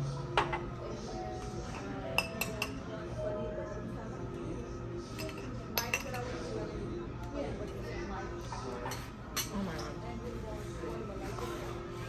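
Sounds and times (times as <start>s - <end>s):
metal spoon clinking ceramic bowl: 5.2s - 6.2s.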